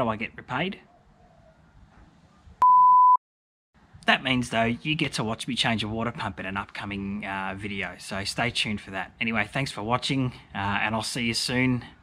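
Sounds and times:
censor bleep tone: 2.6 - 3.2.

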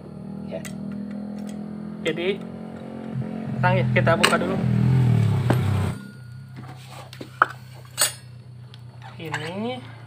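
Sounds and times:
loud engine hum: 0.0 - 10.0
metal parts clinking: 6.5 - 9.8.

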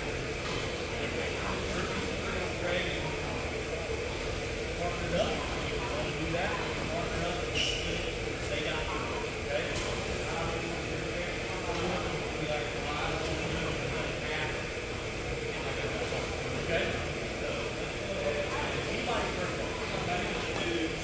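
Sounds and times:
steady background noise: 0.0 - 21.0.

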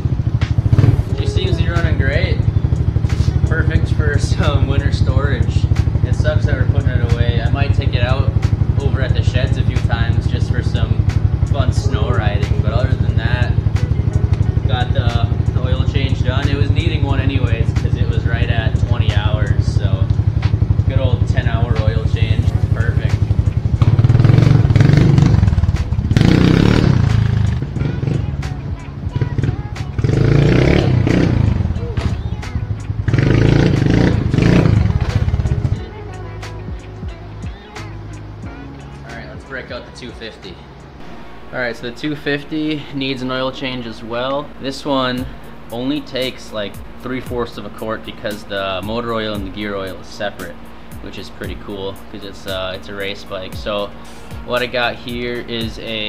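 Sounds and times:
small motorcycle engine idling and revving: 0.0 - 56.0.

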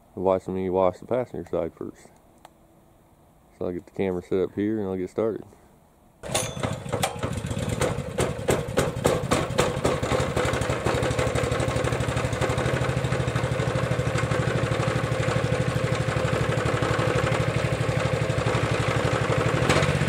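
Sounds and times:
engine idling: 6.2 - 20.0.

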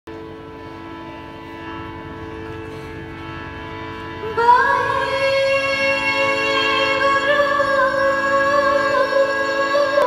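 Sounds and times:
harmonium droning chord: 0.1 - 10.0.

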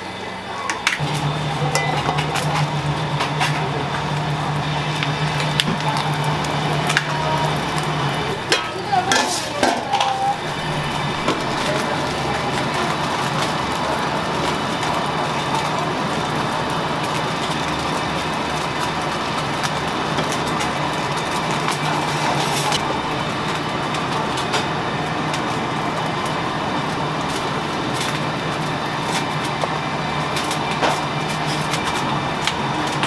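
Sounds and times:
pot sizzling on burner: 0.0 - 33.0
low hum: 9.8 - 12.6.

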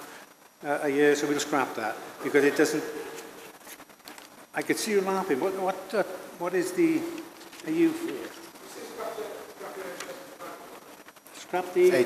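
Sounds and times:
speech: 4.6 - 12.0
quiet murmured voices: 5.5 - 12.0.

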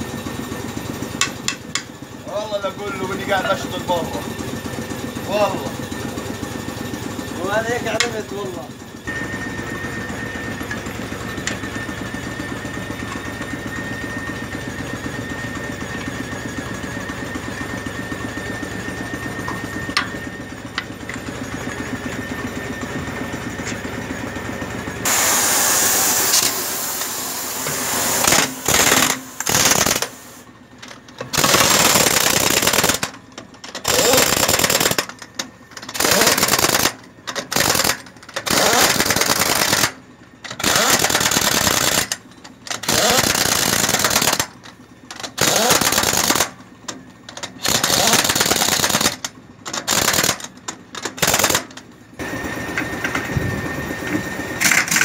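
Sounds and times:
pneumatic impact wrench hammering: 1.2 - 1.9, 25.0 - 55.0.

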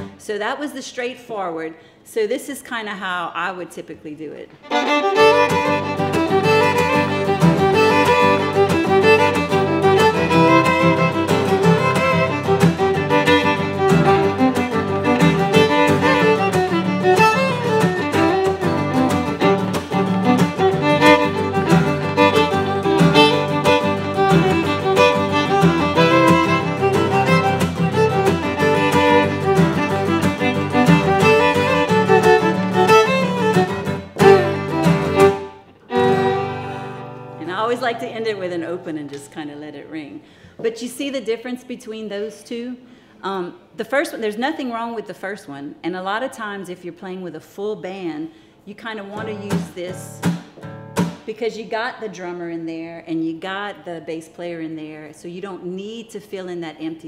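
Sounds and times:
fiddle melody: 4.6 - 39.1, 49.1 - 50.1
acoustic guitar strumming: 4.7 - 39.1, 49.1 - 51.3.

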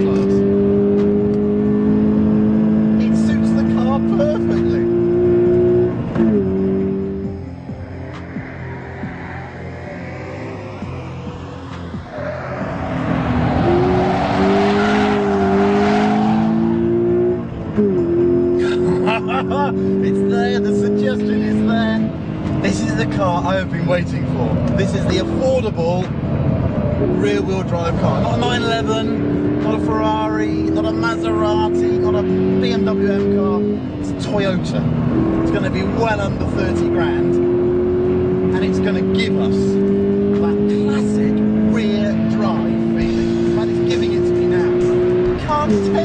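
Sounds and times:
car engine revving high: 0.0 - 46.0.

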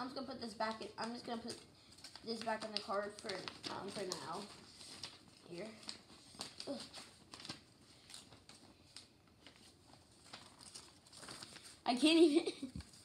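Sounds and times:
paper rustling: 0.4 - 13.0.

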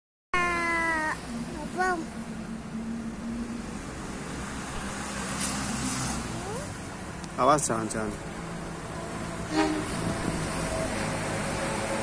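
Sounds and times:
train engine hum: 6.3 - 12.0.

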